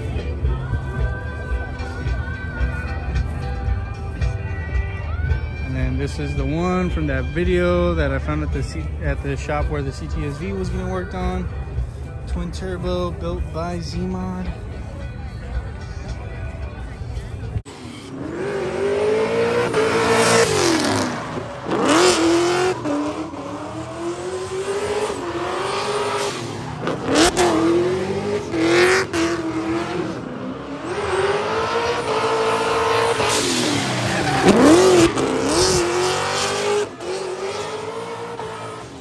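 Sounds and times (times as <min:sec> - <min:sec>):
background music: 0:00.0 - 0:39.0
car engine revving: 0:17.7 - 0:39.0.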